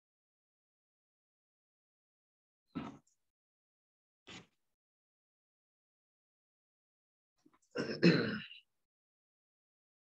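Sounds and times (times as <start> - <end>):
person clearing throat: 7.8 - 8.6.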